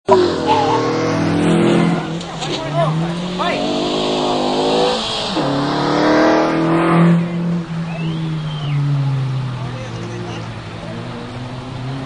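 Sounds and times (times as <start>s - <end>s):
car engine at high revs: 0.0s - 12.0s.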